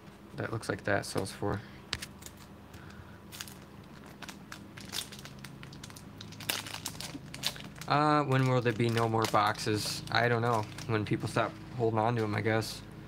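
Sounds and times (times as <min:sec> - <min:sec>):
foil wrapper crinkling: 0:02.0 - 0:11.6.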